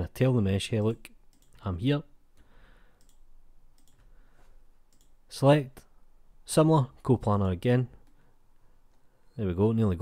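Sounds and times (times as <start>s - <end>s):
computer mouse clicks: 1.3s - 1.6s, 2.4s - 4.1s, 4.9s - 5.2s.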